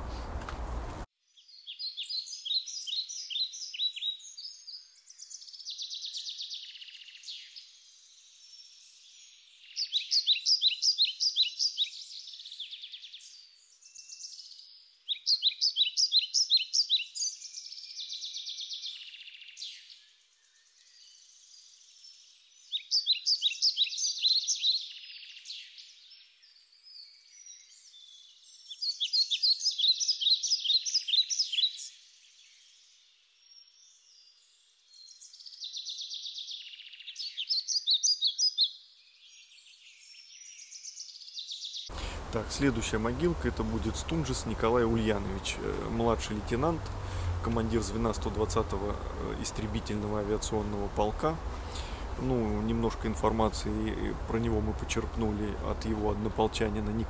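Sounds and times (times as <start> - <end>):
faint song of other birds: 0.0 - 57.0
songbird singing: 0.0 - 57.0.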